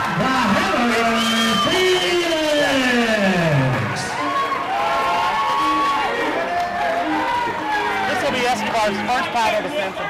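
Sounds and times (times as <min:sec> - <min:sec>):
crowd cheering and whooping: 0:00.0 - 0:08.8
music: 0:00.0 - 0:10.0
ring announcer calling amplified: 0:00.0 - 0:10.0.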